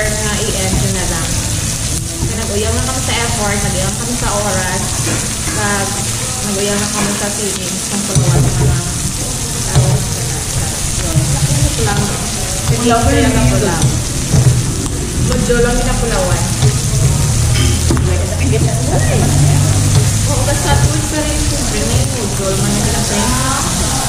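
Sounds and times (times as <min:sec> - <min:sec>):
meat sizzling on a grill pan: 0:00.0 - 0:24.0.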